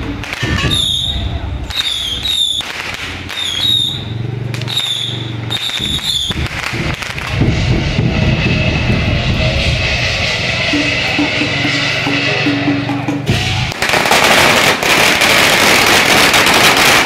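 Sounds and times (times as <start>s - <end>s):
big drum: 0.0s - 1.8s, 5.7s - 15.7s.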